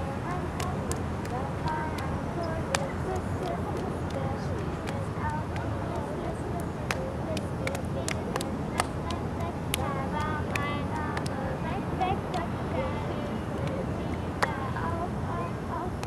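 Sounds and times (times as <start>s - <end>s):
children's voices: 0.0s - 16.0s
steady background hum: 0.0s - 16.0s
sharp clicks or claps: 0.6s - 2.1s, 6.9s - 11.4s.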